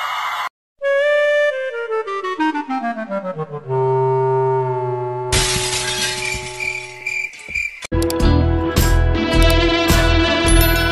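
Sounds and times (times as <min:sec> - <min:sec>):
crashing shattering noise: 0:05.4 - 0:07.5.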